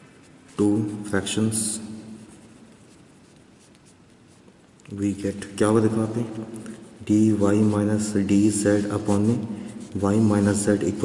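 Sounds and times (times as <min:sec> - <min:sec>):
pen scratching on paper: 0:02.2 - 0:04.8.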